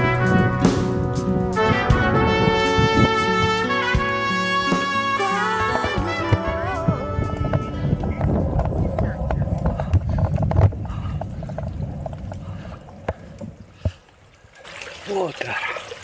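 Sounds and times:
background music: 0.0s - 8.7s
fountain water trickling: 11.3s - 16.0s.

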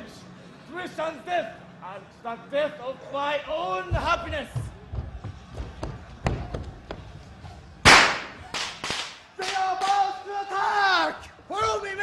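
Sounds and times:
loud gunshot-like bang: 7.9s - 8.4s.

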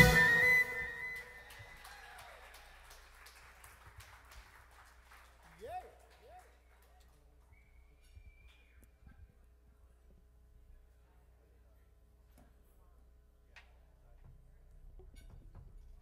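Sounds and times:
drum hits: 0.0s - 1.2s
jazz band final chord: 0.0s - 1.2s
short rising calls: 0.0s - 1.5s.

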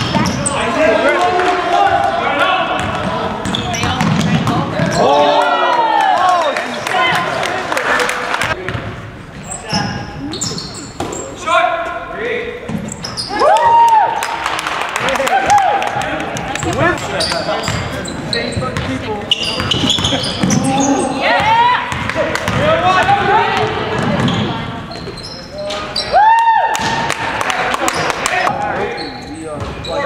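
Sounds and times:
sneakers squeaking: 0.0s - 1.0s, 2.7s - 5.3s, 8.4s - 13.7s, 16.3s - 26.2s, 27.8s - 30.0s
voices echoing in hall: 0.0s - 30.0s.

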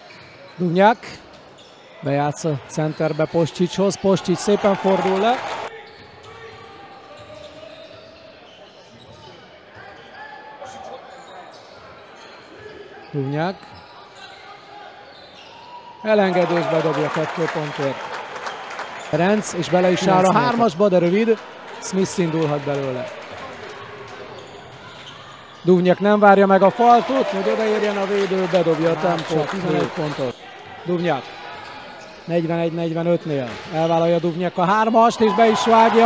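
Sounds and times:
sports hall background noise: 0.0s - 36.0s.

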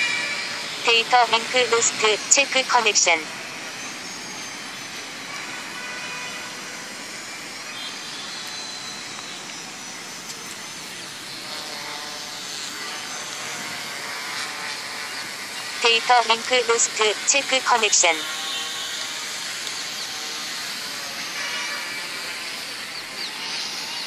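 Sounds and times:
quadcopter motors humming: 0.0s - 24.0s.

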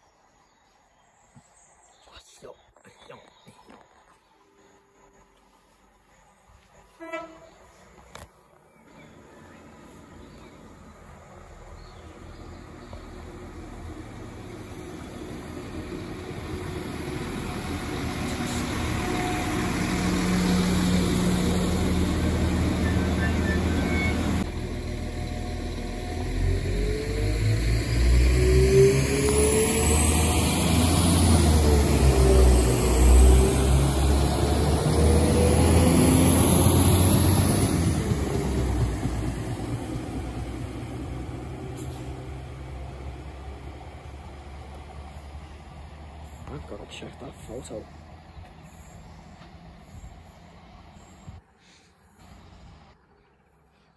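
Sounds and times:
passenger train passing: 8.9s - 51.6s.

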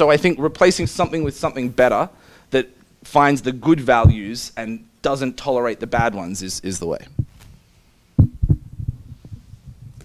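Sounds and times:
microphone handling thumps: 0.7s - 1.5s, 7.1s - 7.6s, 8.2s - 10.0s.

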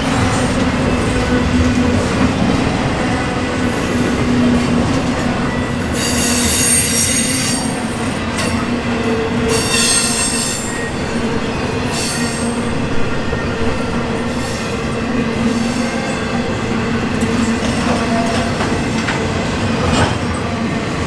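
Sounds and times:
freight train wheels rolling on rail: 0.0s - 21.0s
high-pitched wheel squeal: 5.4s - 7.8s.

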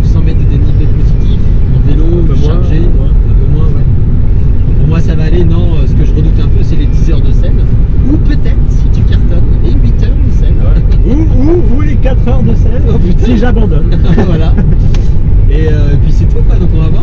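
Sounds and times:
car road and engine rumble: 0.0s - 17.0s
men talking: 0.0s - 17.0s.

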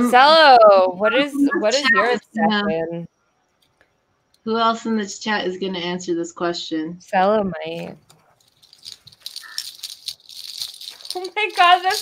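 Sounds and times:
crinkly rustling and crackles: 7.8s - 12.0s.

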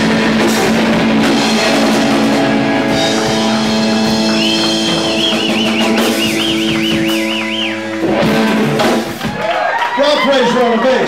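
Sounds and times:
live rock band playing: 0.0s - 9.6s.

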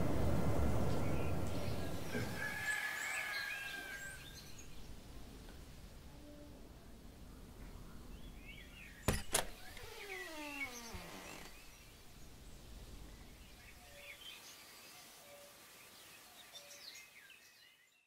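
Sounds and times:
birds chirping: 0.4s - 5.3s, 7.2s - 17.8s
door creak falling in pitch: 9.1s - 11.6s.

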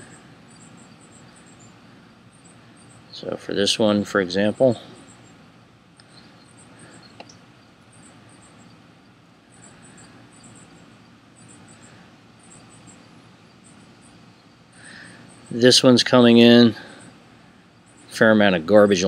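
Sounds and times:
high-pitched insect chirping: 0.0s - 5.4s, 6.0s - 18.4s
low hiss: 0.0s - 19.0s
light clicks: 7.1s - 7.4s.

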